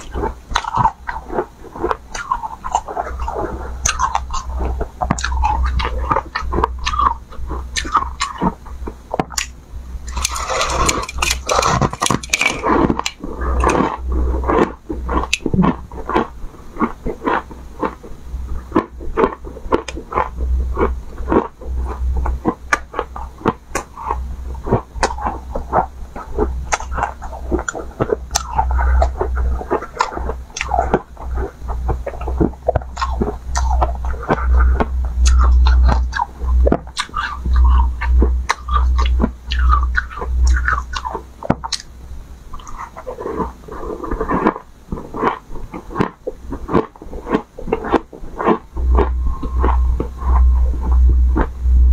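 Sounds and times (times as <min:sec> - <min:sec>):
frozen ice crunching in mouth: 0:00.0 - 0:08.6, 0:09.3 - 0:18.0, 0:18.6 - 0:41.9, 0:42.6 - 0:51.5.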